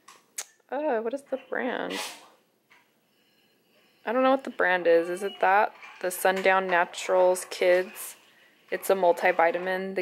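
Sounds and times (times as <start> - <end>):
woman speaking: 0.7 - 2.1, 4.0 - 10.0.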